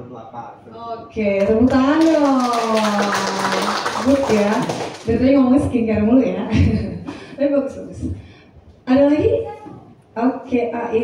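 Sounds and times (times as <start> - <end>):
people clapping: 1.4 - 5.6.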